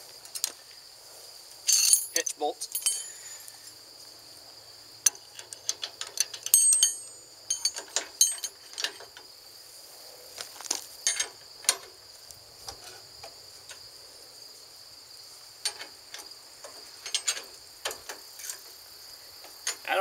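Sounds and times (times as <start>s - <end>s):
high insect drone: 0.0s - 20.0s
wrenches clinking on metal bolts: 1.7s - 3.4s, 5.1s - 9.2s, 11.0s - 11.9s, 15.6s - 18.6s, 19.6s - 20.0s.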